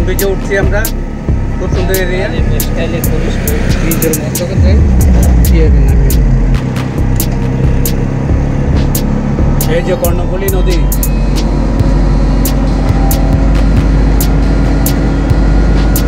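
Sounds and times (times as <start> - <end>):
traffic and road noise: 0.0 - 16.0.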